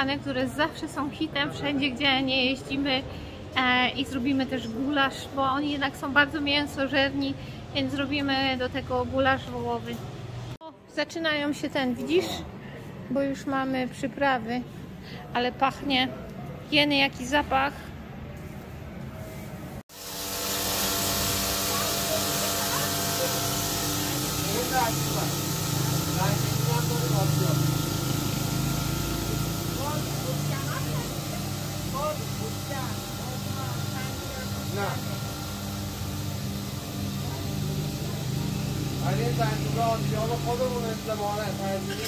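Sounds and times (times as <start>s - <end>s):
electric mill motor hum: 19.9s - 42.0s.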